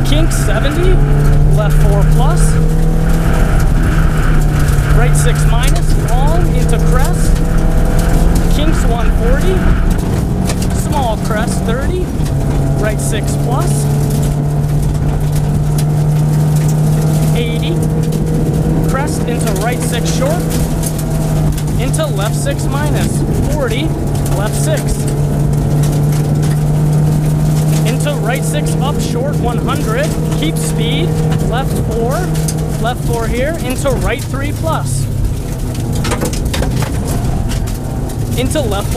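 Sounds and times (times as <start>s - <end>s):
rally car engine at high revs: 0.0s - 38.9s
stones ticking against car: 0.0s - 38.9s.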